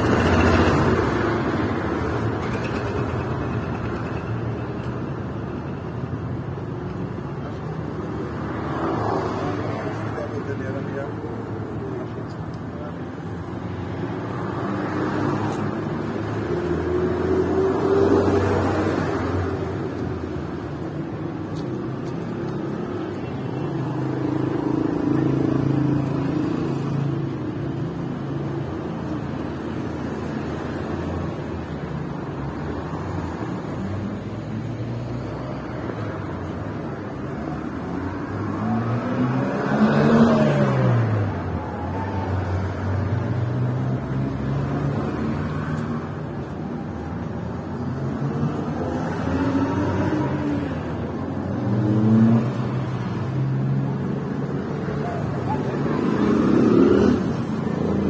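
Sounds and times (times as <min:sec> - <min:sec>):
cars driving past: 0:00.0 - 0:58.0.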